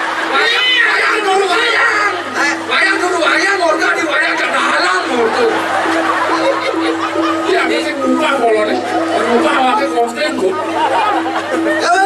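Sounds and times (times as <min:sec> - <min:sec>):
music playing: 0:00.0 - 0:12.0
man talking over loudspeaker: 0:00.2 - 0:05.8, 0:07.4 - 0:10.7, 0:11.7 - 0:12.0.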